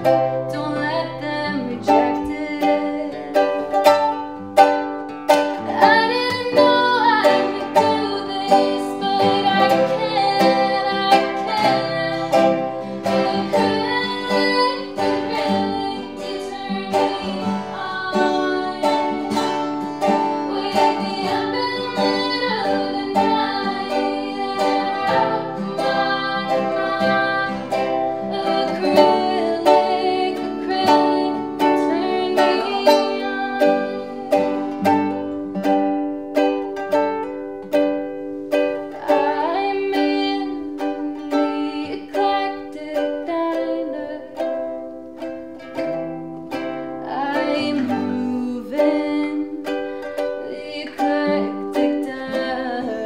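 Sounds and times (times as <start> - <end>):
woman singing: 0.0 - 4.2, 5.5 - 35.6, 38.7 - 44.8, 46.9 - 53.0
ukulele and guitar strumming: 0.0 - 53.0.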